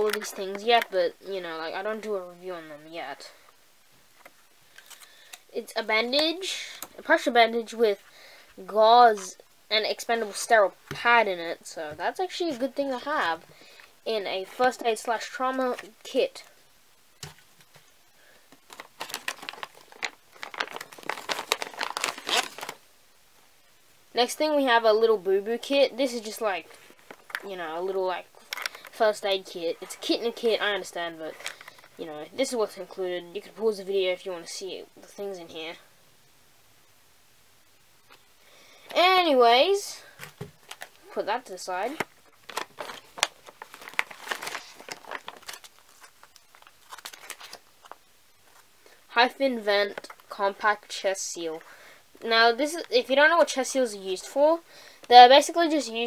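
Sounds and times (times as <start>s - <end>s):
plastic bag crinkling: 17.7s - 22.8s, 28.4s - 29.1s, 29.8s - 32.0s, 40.2s - 41.2s, 41.8s - 48.7s.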